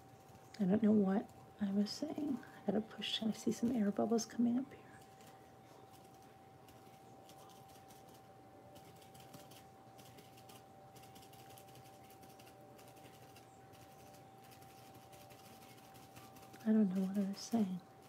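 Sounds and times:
faint steady hum: 0.0s - 18.0s.

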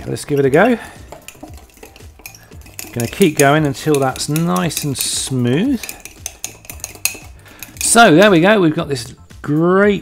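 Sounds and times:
metal spoon clinking in mug: 0.2s - 8.3s.

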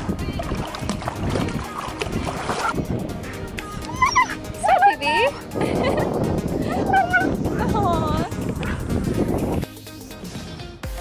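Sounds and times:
dog whining and yelping: 3.9s - 4.8s.

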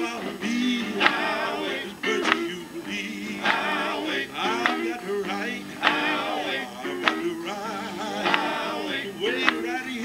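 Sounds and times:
man singing into a microphone: 9.0s - 10.0s.

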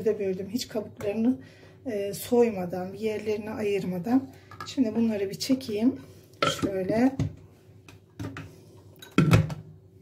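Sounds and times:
knocks on plastic bowl: 9.2s - 9.6s.

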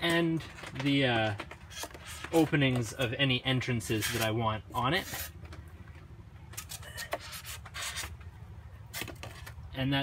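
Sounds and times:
marker scratching on foam: 7.0s - 8.2s.

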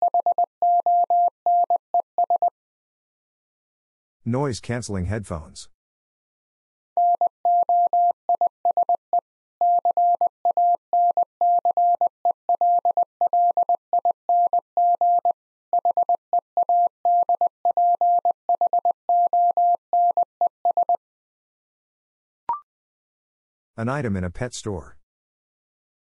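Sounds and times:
morse code tone: 0.0s - 2.5s, 7.0s - 9.0s, 9.6s - 21.0s.

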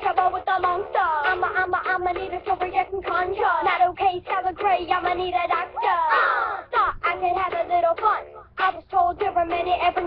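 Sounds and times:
child singing: 0.0s - 10.0s
pop backing track: 0.0s - 10.0s.

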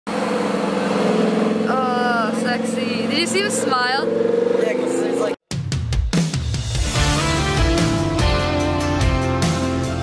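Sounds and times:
car engine running: 0.1s - 5.4s.

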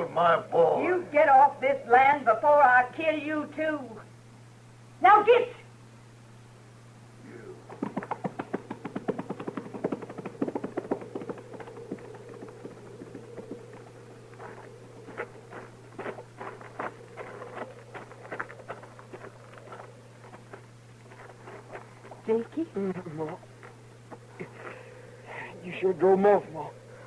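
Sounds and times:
horses galloping hoofbeats: 7.6s - 24.6s.

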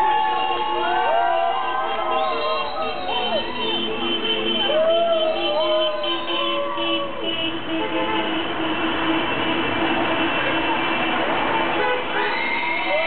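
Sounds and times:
people shouting and whooping: 0.0s - 3.7s, 4.6s - 7.2s, 12.2s - 13.0s
crowd noise: 0.0s - 13.0s
horns blaring: 0.0s - 13.0s
traffic: 0.0s - 13.0s.

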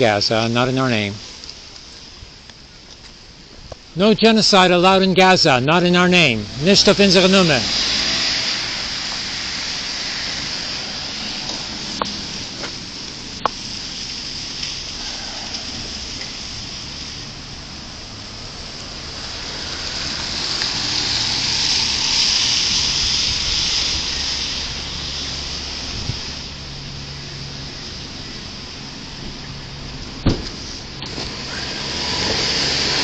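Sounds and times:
low hum of passing traffic: 0.0s - 33.0s
tyres hissing on wet road: 0.0s - 33.0s.

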